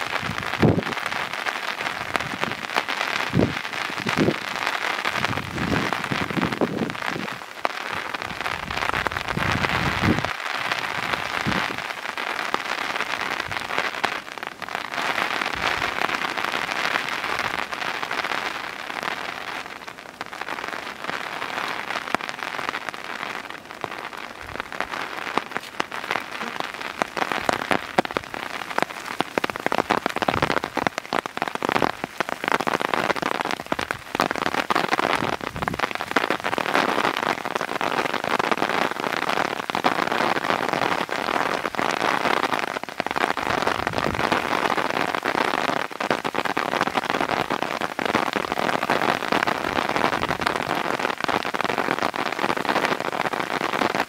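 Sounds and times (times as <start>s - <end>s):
heavy rain falling: 0.0s - 54.0s
raindrops striking sharply: 0.0s - 54.0s.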